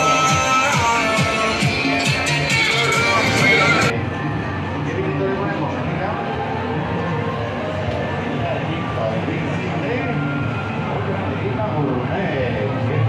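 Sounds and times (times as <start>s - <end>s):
background music: 0.0s - 13.0s
faint fair music: 0.0s - 13.0s
indistinct crowd voices: 0.0s - 13.0s.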